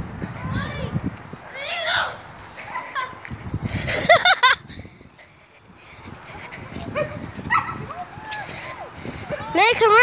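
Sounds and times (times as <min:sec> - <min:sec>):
footsteps and rustling: 0:02.2 - 0:10.0
dog barking: 0:07.0 - 0:07.8.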